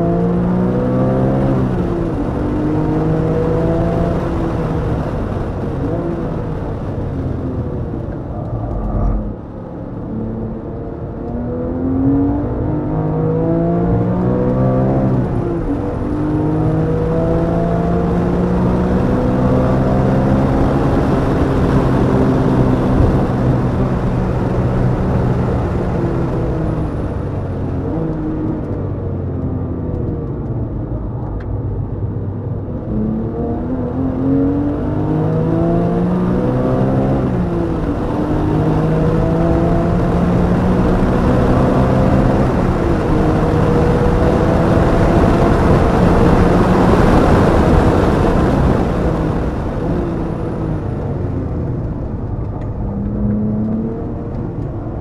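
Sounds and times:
race car engine revving: 7.1s - 28.8s, 32.8s - 55.0s.

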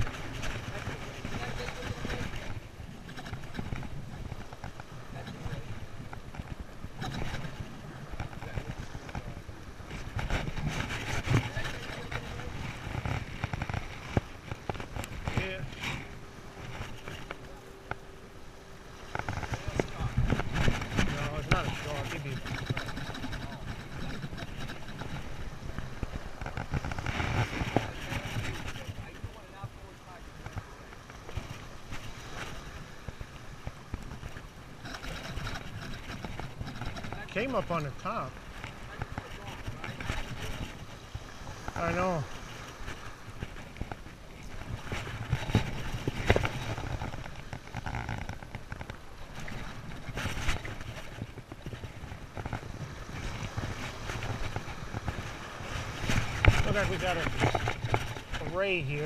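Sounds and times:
small waves washing in: 0.0s - 59.0s
wind rumbling on microphone: 0.0s - 59.0s.

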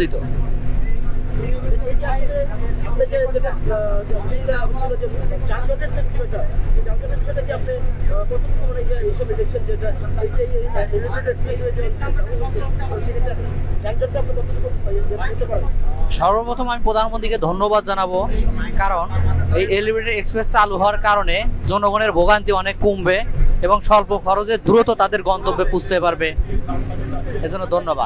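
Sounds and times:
bus engine drone: 0.0s - 28.0s
people talking: 0.0s - 28.0s.

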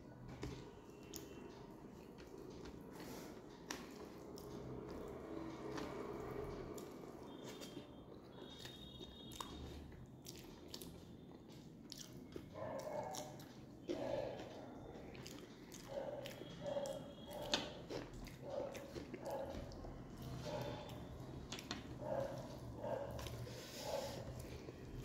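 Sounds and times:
close chewing and biting: 1.0s - 25.0s.

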